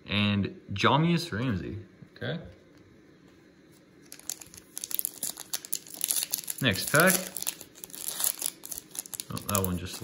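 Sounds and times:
plastic wrapper crinkling: 0:03.9 - 0:10.0.

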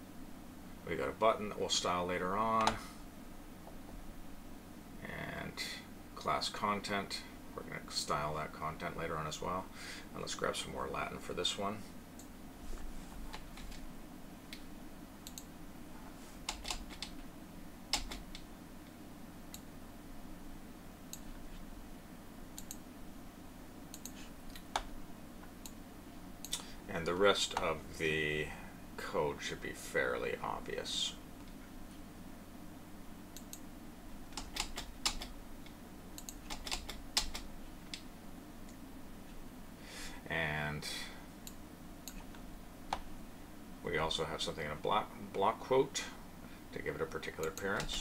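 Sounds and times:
low steady hum: 0:00.0 - 0:48.0
keyboard and mouse clicks: 0:16.4 - 0:17.2, 0:17.9 - 0:18.5, 0:22.6 - 0:22.8, 0:23.9 - 0:24.9, 0:34.3 - 0:35.3, 0:36.2 - 0:38.1.

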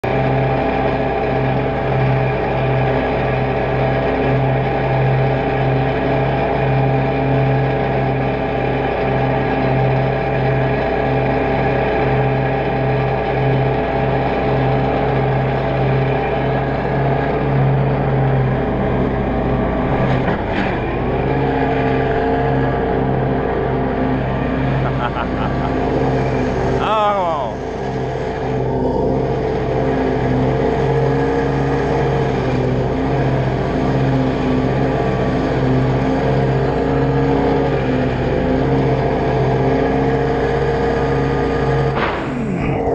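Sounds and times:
mower engine throbbing: 0:00.0 - 0:42.9.

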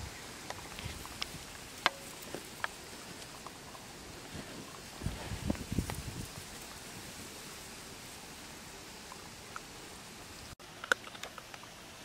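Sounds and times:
faint outdoor hiss: 0:00.0 - 0:12.0.

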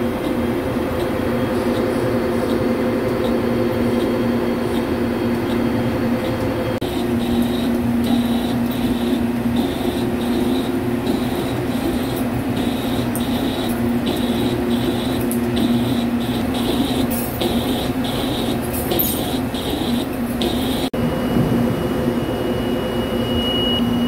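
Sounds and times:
lathe machine hum: 0:00.0 - 0:23.4
pulsing high tone: 0:06.2 - 0:24.0.

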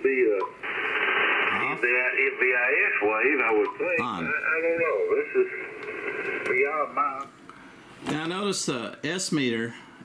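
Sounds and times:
radio static hiss: 0:00.0 - 0:07.3
speech over radio: 0:01.5 - 0:05.7.

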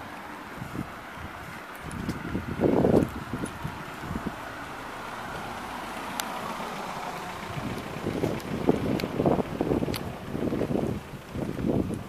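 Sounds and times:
car tyres hissing on wet street: 0:00.0 - 0:11.9.

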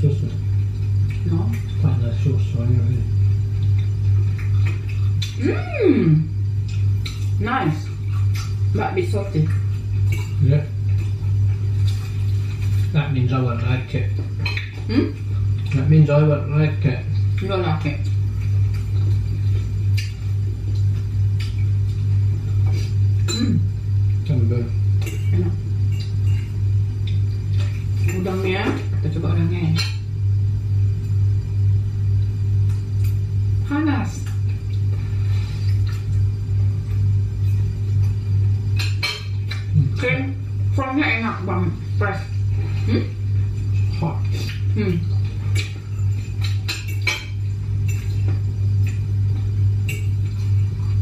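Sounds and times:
low hum: 0:00.0 - 0:51.0
forks clinking on plates: 0:09.5 - 0:11.1, 0:25.0 - 0:29.0, 0:38.8 - 0:39.7, 0:43.6 - 0:50.9.

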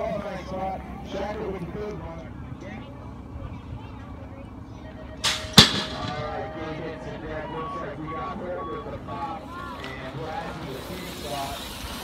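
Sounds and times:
bmx starting gate slamming down: 0:05.2 - 0:06.7.

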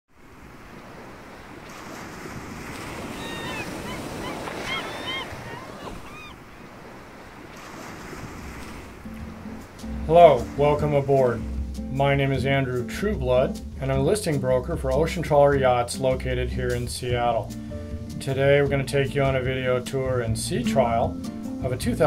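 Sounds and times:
ocean waves washing: 0:00.1 - 0:22.0
short high calls: 0:03.0 - 0:06.4
music: 0:09.0 - 0:22.0.

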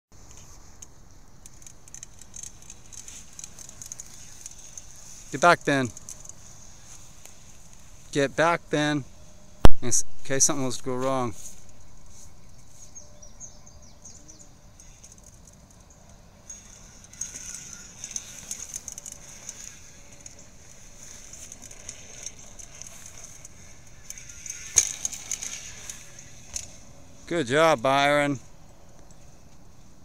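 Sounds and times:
small rustles and clicks: 0:00.2 - 0:09.4, 0:14.2 - 0:30.0
sharp knock: 0:09.7 - 0:10.2.

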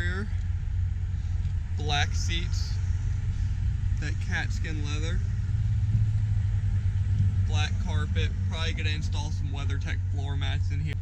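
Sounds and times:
fluttering low rumble: 0:00.0 - 0:11.0.

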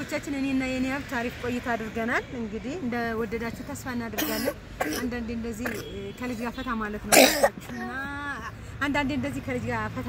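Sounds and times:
person clearing throat: 0:04.2 - 0:05.9, 0:07.1 - 0:07.6.

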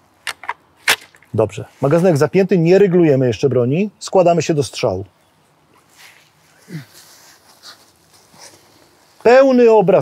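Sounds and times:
faint rustles and light knocks: 0:05.7 - 0:09.4.

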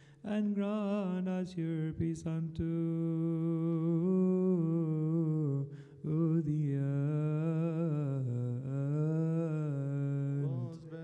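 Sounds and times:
singer breathing: 0:00.0 - 0:00.2, 0:05.7 - 0:06.1
man singing liturgical chant: 0:00.2 - 0:11.0.

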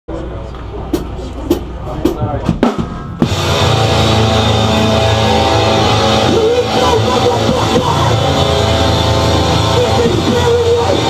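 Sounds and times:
low amplifier drone: 0:00.1 - 0:11.0
drum hits: 0:00.9 - 0:08.4
metal band playing loud: 0:01.0 - 0:11.0.

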